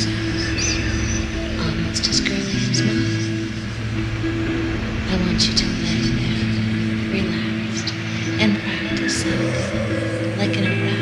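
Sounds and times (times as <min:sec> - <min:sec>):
synthesizer low droning chord: 0:00.0 - 0:11.0.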